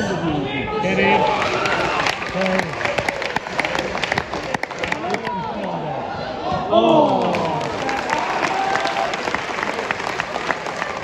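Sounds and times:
murmur of voices: 0.0s - 11.0s
crowd handclapping: 1.1s - 5.4s, 7.0s - 11.0s.

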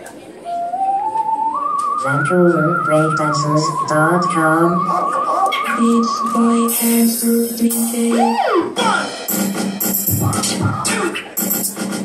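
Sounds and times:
swooping pitch glides: 0.4s - 8.9s
dance music with bass hits: 4.0s - 12.0s.

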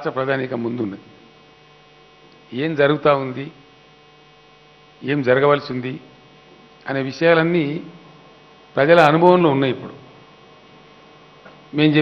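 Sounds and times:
man speaking into microphone: 0.0s - 1.2s, 2.5s - 3.6s, 5.0s - 6.1s, 6.8s - 8.1s, 8.7s - 10.2s, 11.7s - 12.0s
electrical mains hum: 0.0s - 12.0s.

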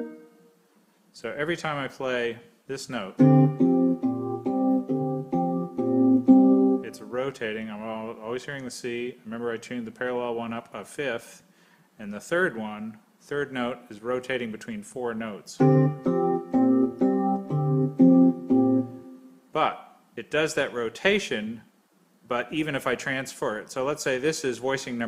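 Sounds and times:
electronic keyboard chords: 0.0s - 0.4s, 3.2s - 7.0s, 15.6s - 19.4s.

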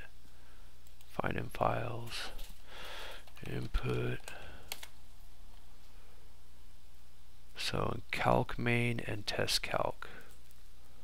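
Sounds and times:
faint steady hum: 0.0s - 11.0s
computer keyboard keystrokes: 3.2s - 5.0s.

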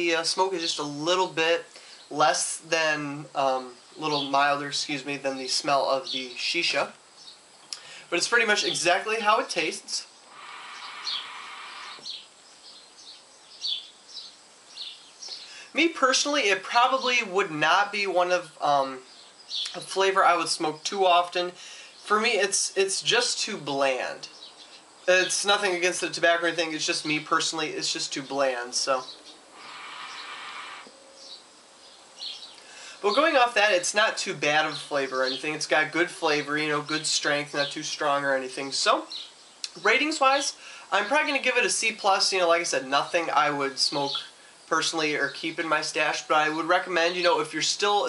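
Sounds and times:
birds chirping: 0.0s - 48.0s
small high chirps: 10.0s - 15.6s
hookah bubbling hiss: 10.2s - 12.3s, 29.5s - 31.0s.

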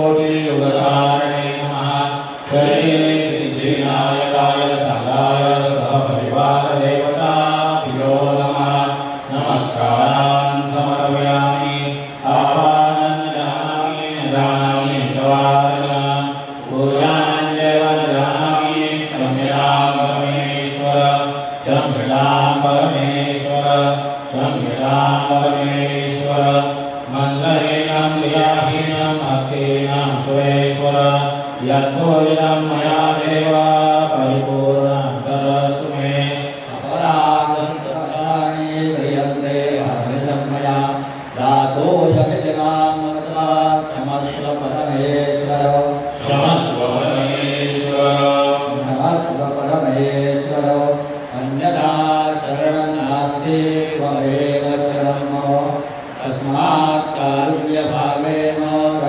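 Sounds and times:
person chanting a mantra: 0.0s - 59.0s.

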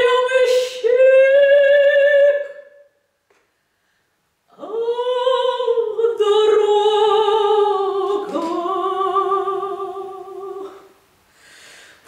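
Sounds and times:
woman singing operatic unaccompanied: 0.0s - 3.0s, 4.5s - 11.0s.

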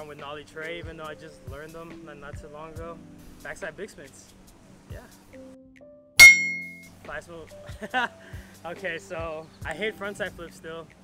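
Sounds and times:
faint background music: 0.0s - 11.0s
bright bell ding: 6.2s - 6.8s.

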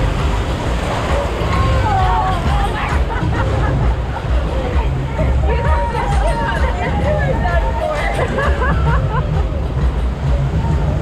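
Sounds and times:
rushing whitewater: 0.0s - 11.0s
steady low rumble: 0.0s - 11.0s
people laughing and calling out: 1.0s - 11.0s.

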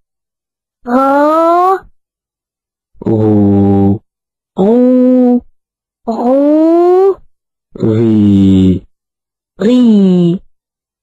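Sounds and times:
voice pronouncing a syllable: 0.8s - 1.9s, 3.0s - 8.9s, 9.6s - 10.5s.

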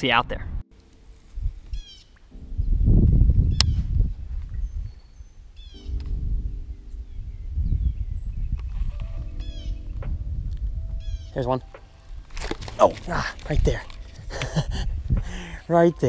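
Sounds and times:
wind rumbling on microphone: 0.1s - 15.6s
low hum: 0.8s - 15.4s
bird chirping: 1.7s - 3.8s, 4.5s - 10.3s, 10.9s - 12.2s.

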